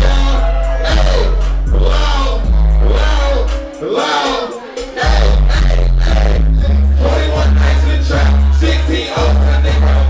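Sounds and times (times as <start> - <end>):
hip hop beat with deep bass: 0.0 - 10.0
rapping through a microphone: 0.0 - 10.0.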